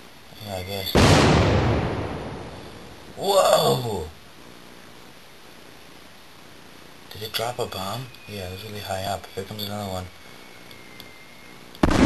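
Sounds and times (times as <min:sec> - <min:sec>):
bomb explosion: 0:00.9 - 0:02.9, 0:11.8 - 0:12.0.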